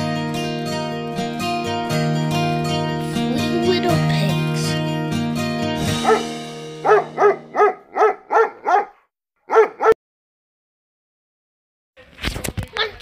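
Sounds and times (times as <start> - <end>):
music: 0.0 - 7.9.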